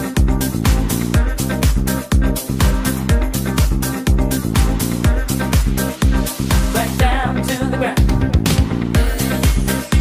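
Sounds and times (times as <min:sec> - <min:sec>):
funky house music: 0:00.0 - 0:10.0.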